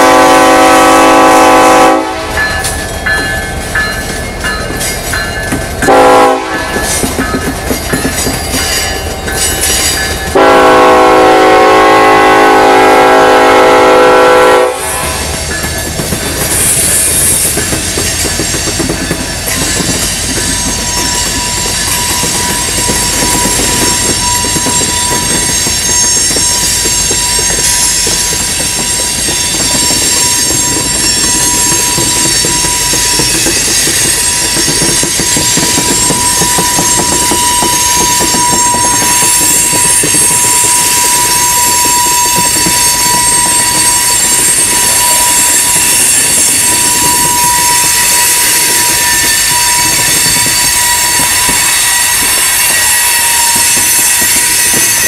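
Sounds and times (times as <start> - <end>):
train wheels rumbling on rail: 0.0 - 55.0
high-pitched wheel squeal: 14.8 - 55.0.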